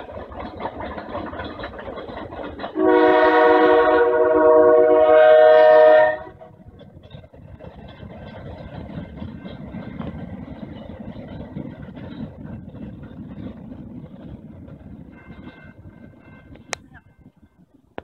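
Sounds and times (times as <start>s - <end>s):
moving train rumble: 0.0s - 18.0s
locomotive air horn blast: 2.8s - 6.4s.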